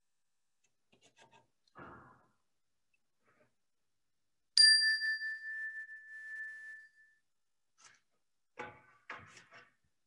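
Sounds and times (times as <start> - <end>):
struck bell ringing: 4.6 - 6.7.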